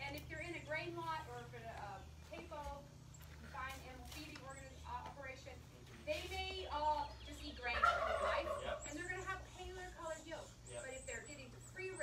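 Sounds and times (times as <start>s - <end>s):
people talking: 0.0s - 12.0s
turkey gobbling: 7.6s - 10.6s.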